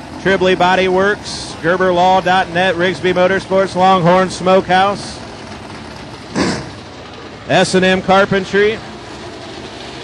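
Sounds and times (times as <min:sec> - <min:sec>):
race car engine: 0:00.0 - 0:10.0.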